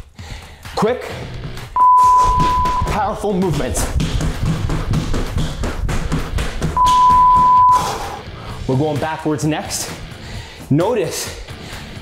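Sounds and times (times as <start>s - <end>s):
background music: 0.0s - 12.0s
interval timer beep: 1.8s - 3.1s, 6.8s - 8.0s
quick foot taps and thuds: 2.3s - 7.7s.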